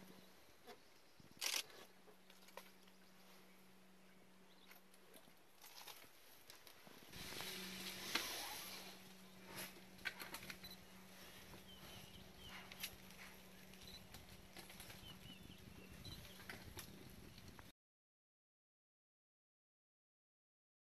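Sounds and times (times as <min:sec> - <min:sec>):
steady low hum: 0:00.0 - 0:17.6
faint bird chirps: 0:10.6 - 0:14.1, 0:14.8 - 0:16.5.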